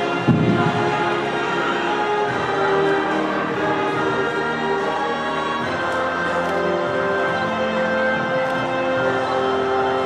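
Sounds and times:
choir singing sustained notes: 0.0 - 10.0.

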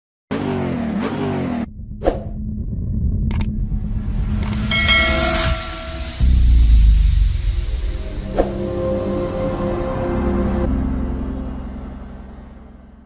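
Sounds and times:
car engine revving: 0.3 - 10.7
rising whoosh: 1.7 - 11.3.

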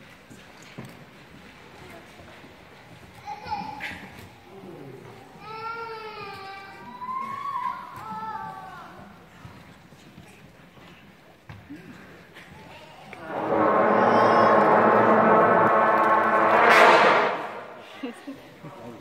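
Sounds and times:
brass band holding a chord: 13.2 - 18.0.

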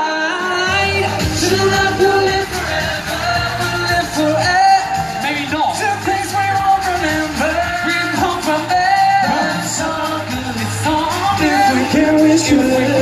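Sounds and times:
loud pop backing music: 0.0 - 13.0
male vocal group singing: 0.0 - 13.0.

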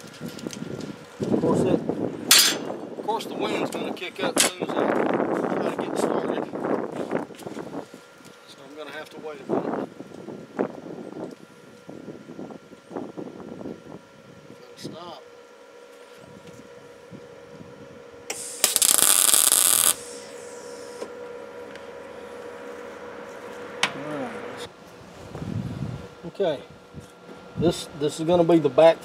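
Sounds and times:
welder arc noise: 18.1 - 29.0.

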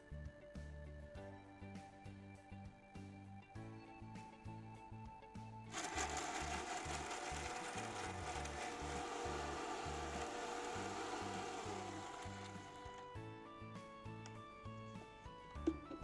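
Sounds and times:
mixer grinder running: 5.7 - 13.2.

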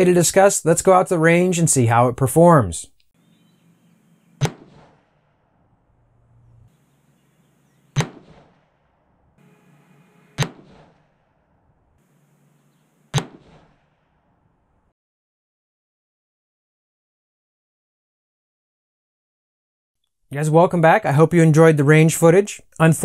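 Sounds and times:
rifle shots: 4.4 - 5.1, 7.7 - 8.9, 9.5 - 11.2, 13.0 - 14.2.

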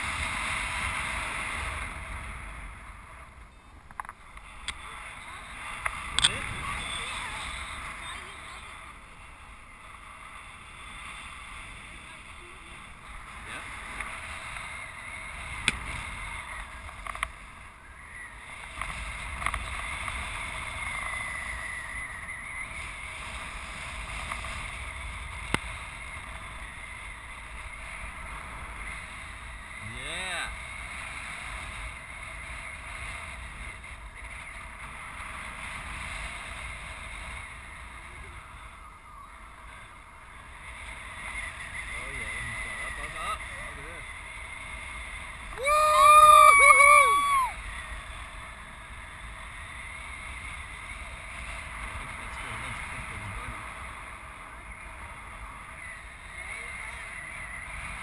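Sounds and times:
wind rushing over microphone: 0.0 - 58.0.

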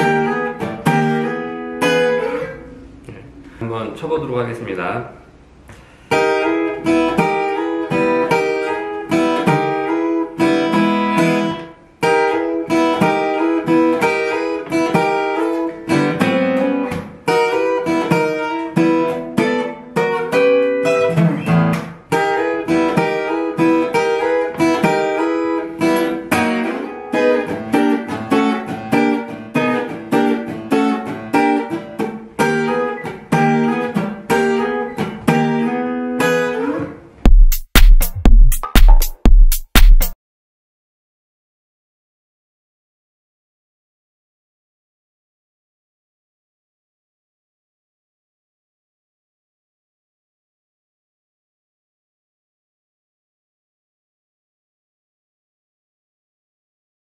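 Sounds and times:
fingerstyle acoustic guitar boogie: 0.0 - 3.0, 6.1 - 40.1.

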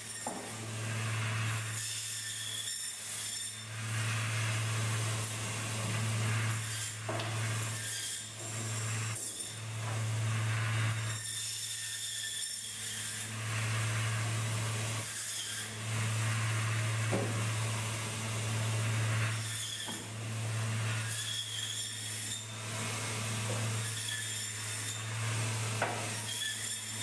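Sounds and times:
saw blade cutting: 0.0 - 27.0
table saw motor hum: 0.0 - 27.0.

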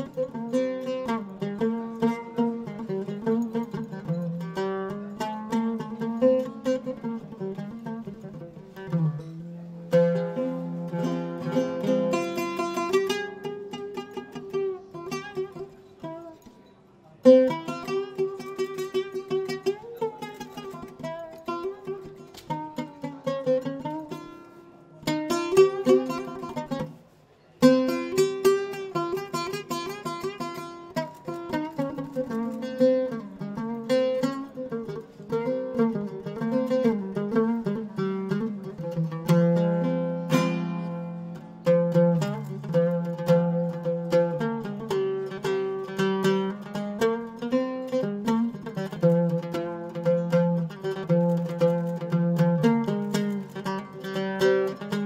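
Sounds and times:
plucked string melody: 0.0 - 55.0.

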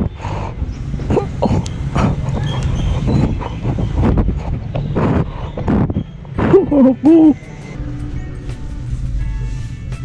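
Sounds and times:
hooting vocal calls: 0.0 - 7.4
low steady rumble: 0.0 - 10.0.

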